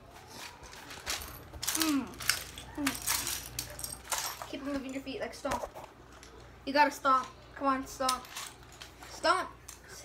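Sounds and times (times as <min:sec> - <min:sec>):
pained hum: 0:00.0 - 0:04.4.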